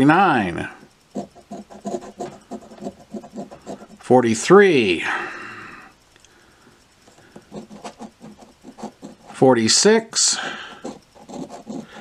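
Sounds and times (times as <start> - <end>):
coin scraping lottery ticket: 7.5 - 12.0.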